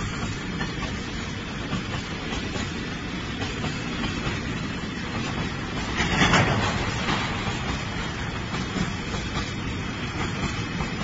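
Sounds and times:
train wheels rumbling on rails: 0.0s - 11.0s.

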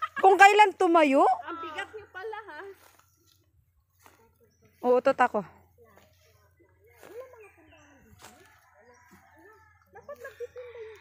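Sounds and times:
rooster crowing: 8.2s - 11.0s.

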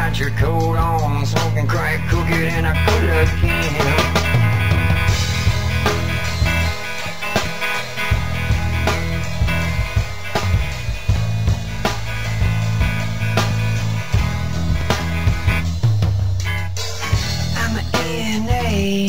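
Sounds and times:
drum beat: 0.0s - 19.0s
guitar: 0.0s - 19.0s
held bass notes: 0.0s - 19.0s.

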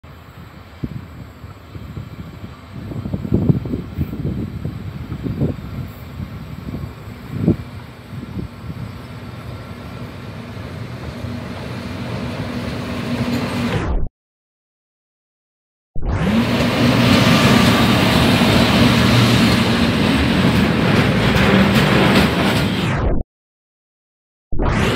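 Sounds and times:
electric locomotive rumble: 0.1s - 13.7s, 16.2s - 22.9s.

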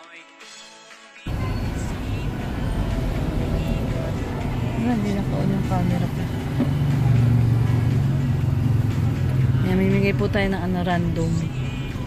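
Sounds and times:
music with voice: 0.0s - 12.0s
engine and road noise rumble: 1.3s - 12.0s.

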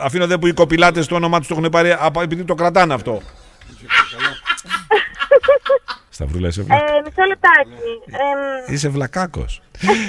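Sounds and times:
person laughing: 3.9s - 6.1s.

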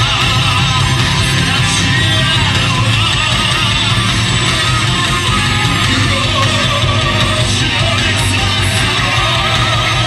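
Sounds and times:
live heavy metal band: 0.0s - 10.0s.

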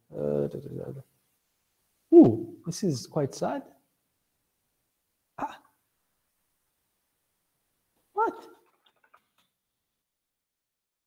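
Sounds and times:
short loud vocal sound: 2.1s - 2.6s.

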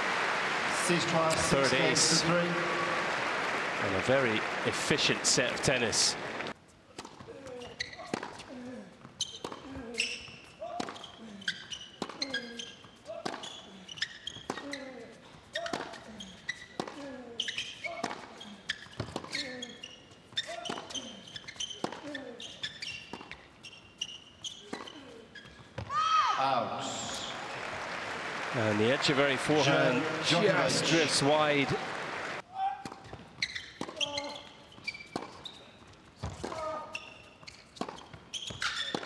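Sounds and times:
shoes squeaking on court: 7.0s - 25.9s, 31.4s - 39.0s
tennis ball bounces: 36.2s - 36.7s.

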